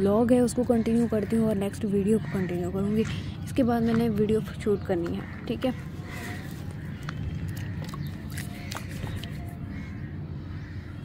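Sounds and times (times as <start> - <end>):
bird calling: 0.0 - 11.0
low background rumble: 0.0 - 11.0.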